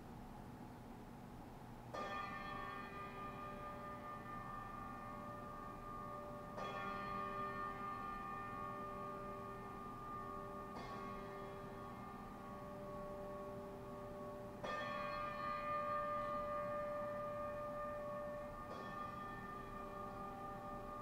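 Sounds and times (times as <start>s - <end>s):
bell tolling slowly: 1.9s - 21.0s.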